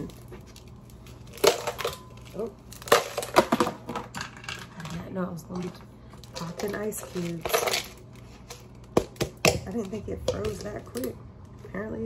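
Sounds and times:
ice cube tray cracking: 0.0s - 5.0s.

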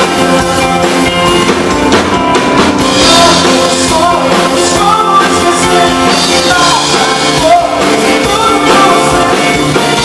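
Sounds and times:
live pop band playing: 0.0s - 10.0s.

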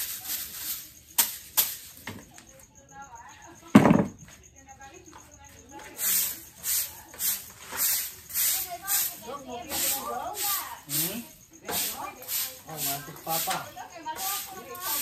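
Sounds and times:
broom sweeping concrete floor: 0.0s - 2.2s, 5.8s - 15.0s
faint voices talking: 1.8s - 15.0s.

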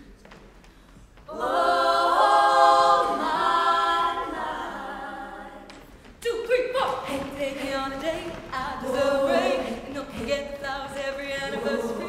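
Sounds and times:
women's choir singing: 1.3s - 12.0s.

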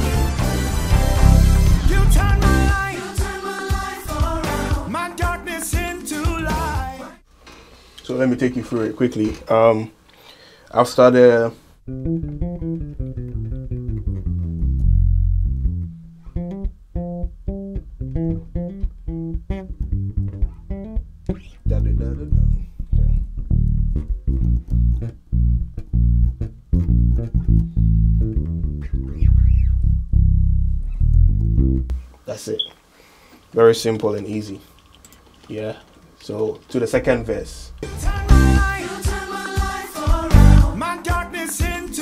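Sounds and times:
electric bass guitar playing: 0.0s - 6.9s, 11.8s - 32.1s, 37.1s - 42.0s.

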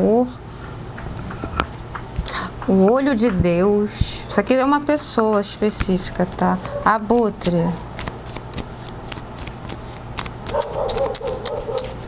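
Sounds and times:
cards being shuffled: 5.8s - 12.0s.

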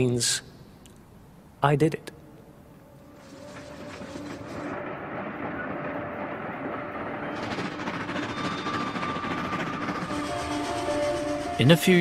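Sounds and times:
train clattering on rails: 2.9s - 12.0s.

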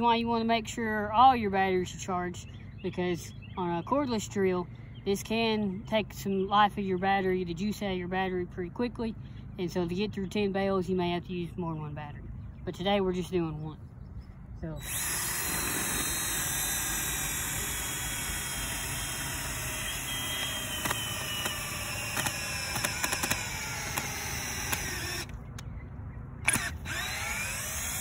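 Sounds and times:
cordless drill motor whine: 14.8s - 25.4s, 26.4s - 28.0s
drill click: 14.8s - 25.6s, 26.5s - 28.0s.

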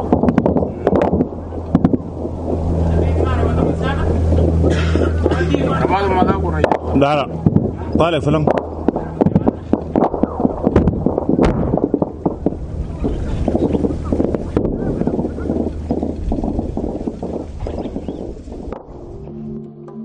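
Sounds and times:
low rumble: 0.0s - 20.0s
gunfire cracks: 8.5s - 14.8s.

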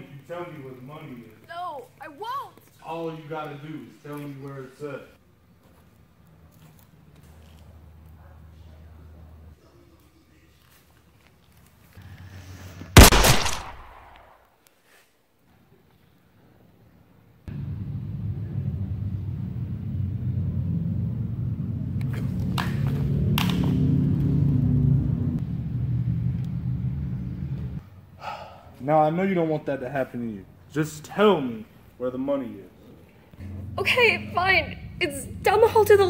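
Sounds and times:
pistol shot: 13.0s - 14.4s
steady low drone: 17.5s - 27.8s.

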